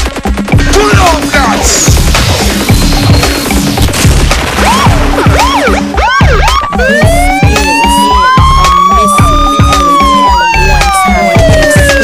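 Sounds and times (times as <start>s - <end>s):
hip hop drum beat with heavy bass: 0.1s - 12.0s
siren wail sound effect: 4.5s - 12.0s.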